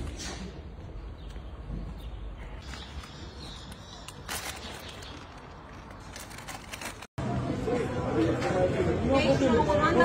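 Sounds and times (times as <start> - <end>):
low outdoor background noise: 0.0 - 10.0
murmur of people talking: 7.2 - 10.0.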